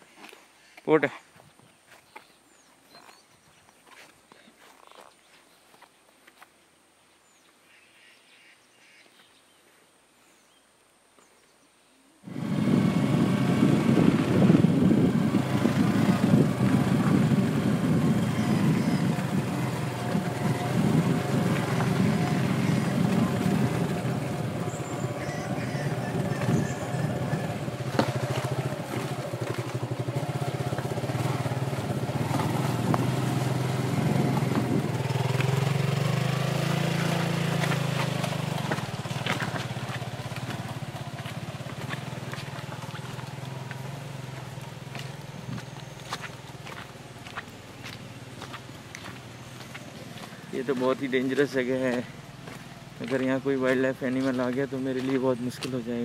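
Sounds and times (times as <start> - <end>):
motorcycle engine running: 12.2 - 56.0.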